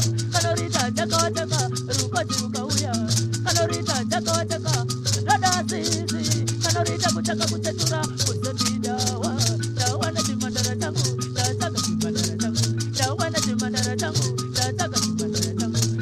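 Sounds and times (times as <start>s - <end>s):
fast shaker rhythm: 0.0s - 16.0s.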